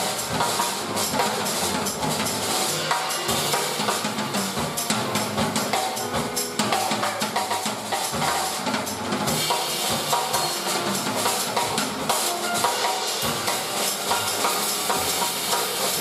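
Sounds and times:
drums and cymbals: 0.0s - 16.0s
grand piano: 0.0s - 16.0s
upright bass: 0.0s - 16.0s.

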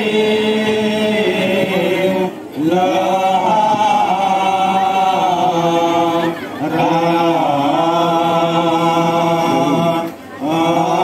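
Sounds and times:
men chanting devotional song: 0.0s - 11.0s.

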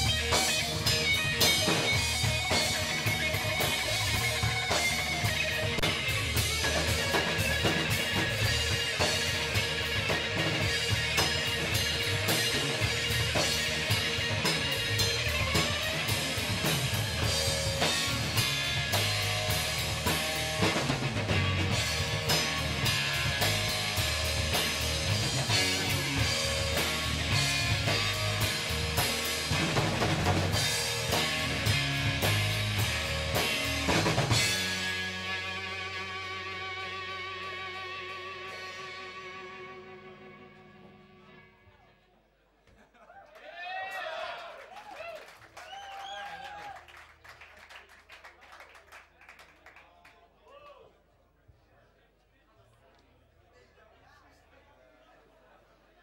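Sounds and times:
drum kit: 0.0s - 41.1s
electric guitars: 0.0s - 41.9s
bass guitar: 0.0s - 42.0s.

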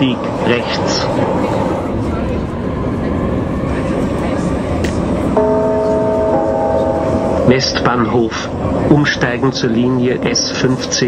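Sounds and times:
underground train rumble: 0.0s - 11.0s
cluster of steady tones: 1.9s - 11.0s.

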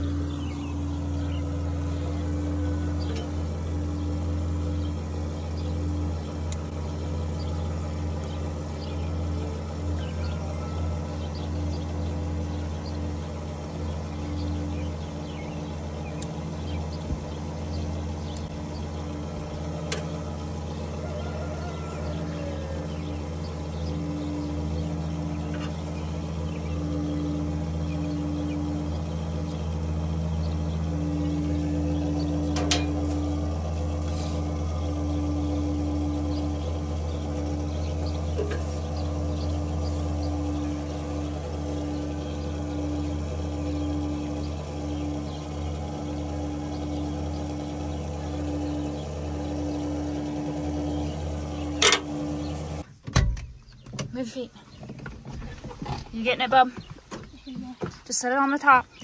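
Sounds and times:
pulsing high hum: 0.0s - 52.9s
tractor diesel engine idling: 0.0s - 53.0s.

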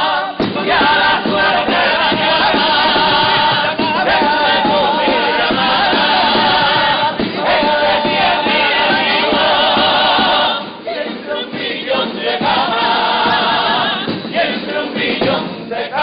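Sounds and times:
male chorus singing in harmony: 0.0s - 16.0s.

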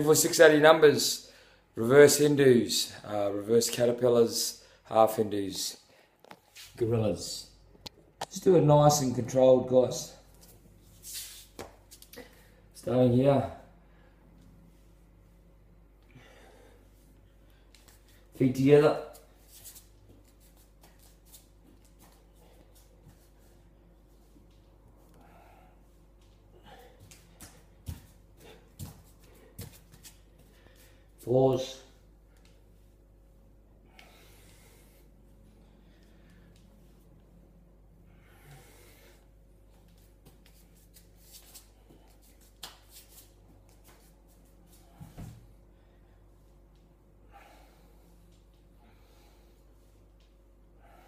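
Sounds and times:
low steady hum: 0.0s - 51.0s
hands and feet patting tiled floor: 10.3s - 12.3s, 19.1s - 25.0s, 26.1s - 31.4s, 39.6s - 45.5s.

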